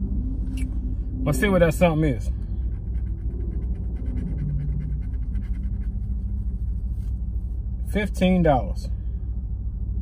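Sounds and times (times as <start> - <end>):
steady low rumble: 0.0 - 10.0
scratching lottery ticket: 2.8 - 7.5.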